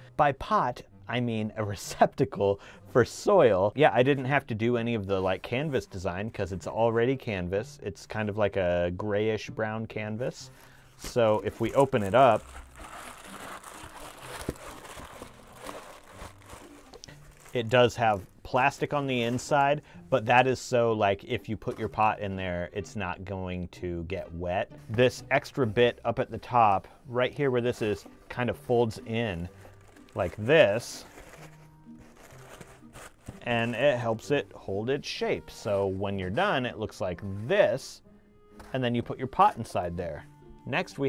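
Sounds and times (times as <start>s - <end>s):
faint background music: 0.0s - 41.0s
fabric rustling: 11.0s - 18.3s, 29.3s - 33.9s
plastic lining crinkling: 11.0s - 19.8s, 28.9s - 34.1s.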